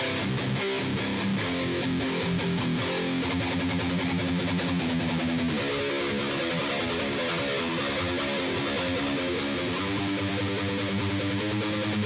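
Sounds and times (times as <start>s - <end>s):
distorted electric guitar riff: 0.0s - 12.0s.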